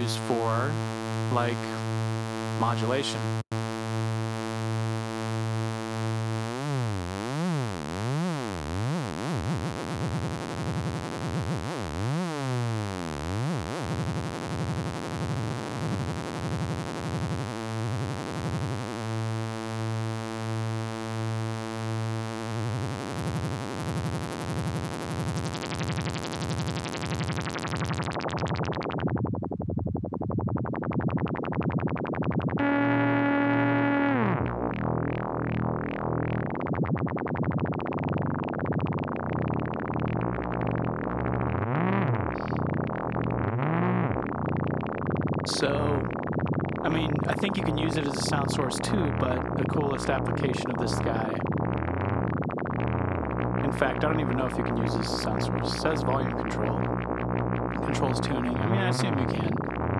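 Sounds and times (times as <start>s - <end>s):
synthesizer note gliding down: 0.0s - 9.4s, 30.9s - 59.9s
synthesizer bass note wavering: 0.0s - 59.9s.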